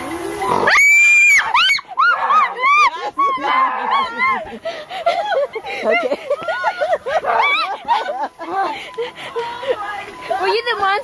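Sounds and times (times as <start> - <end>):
piercing high-pitched scream: 0.4 - 4.1.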